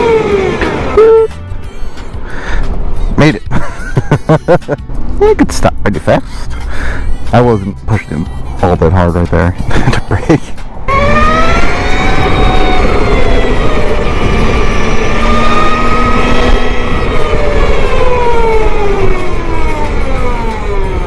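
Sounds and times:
wind and road noise: 0.0 - 21.0
electric motorcycle motor whine: 10.9 - 21.0.

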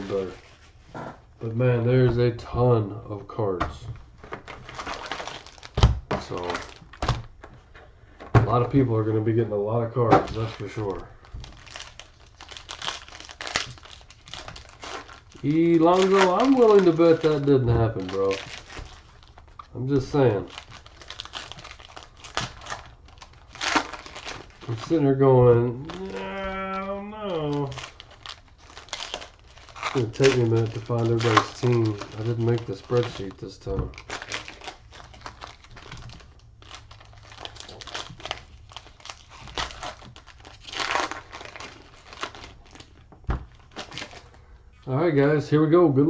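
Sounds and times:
foil wrapper tearing and crinkling: 4.3 - 7.4, 10.3 - 44.4.

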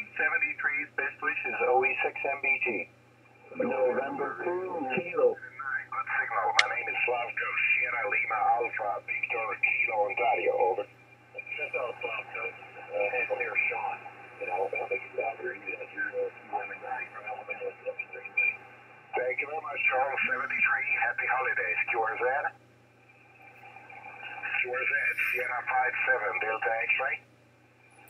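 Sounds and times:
narrow-band radio speech: 0.0 - 2.9, 3.5 - 22.6, 24.2 - 27.2
low hum: 22.6 - 26.5.

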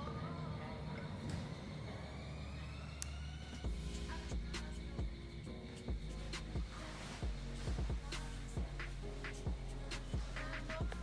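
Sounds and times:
engine low rumble: 0.0 - 11.0
faint high whine: 0.0 - 11.0.

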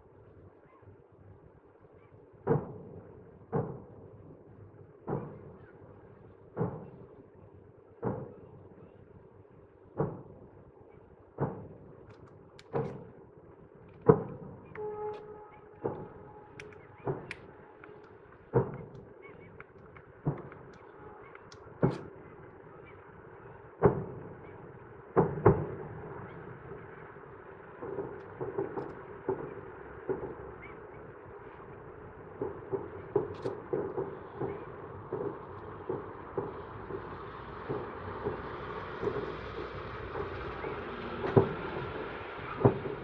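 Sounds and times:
rolling echo: 2.4 - 43.0
distant fireworks shell bursts: 11.4 - 13.2, 13.9 - 22.2, 27.8 - 43.0
crackling firework bursts: 13.9 - 43.0.

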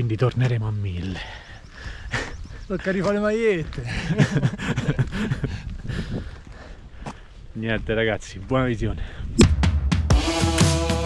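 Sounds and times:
man laughing: 3.8 - 5.7
wind rumbling on microphone: 4.6 - 9.5.

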